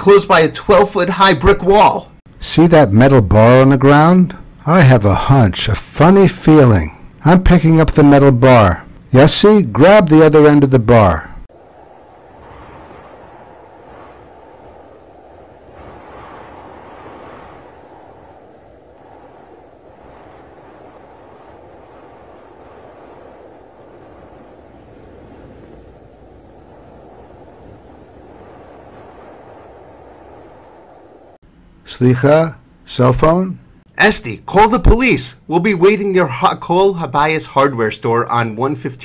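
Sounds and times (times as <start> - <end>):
wind blowing: 0.0 - 32.8.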